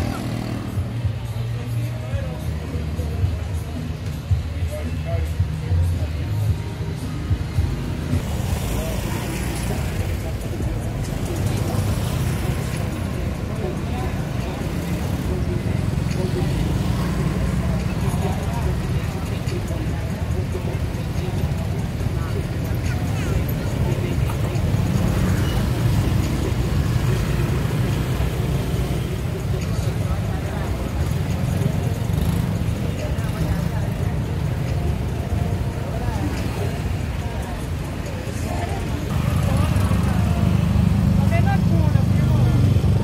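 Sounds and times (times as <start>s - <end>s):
low rumble of vehicle traffic: 0.0s - 43.0s
people talking: 0.0s - 43.0s.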